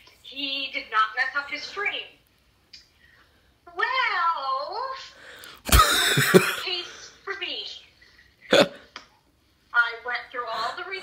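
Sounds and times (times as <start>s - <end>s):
woman laughing: 5.7s - 6.8s.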